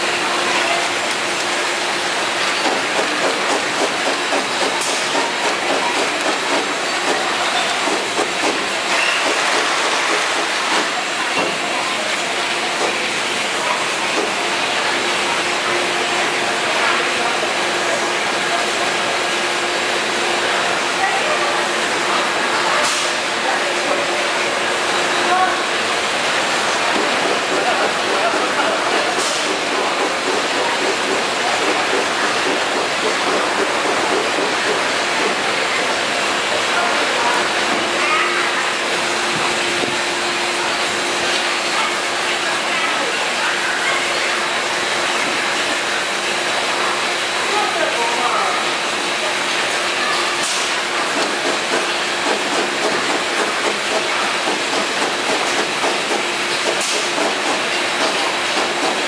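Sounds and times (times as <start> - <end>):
conveyor machinery clattering: 0.0 - 59.0.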